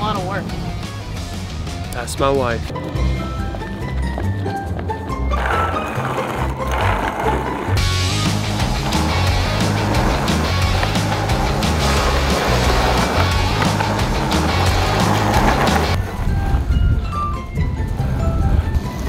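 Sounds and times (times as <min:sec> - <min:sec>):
background music with bass line: 0:00.0 - 0:19.0
skateboard wheels rolling on concrete: 0:00.0 - 0:19.0.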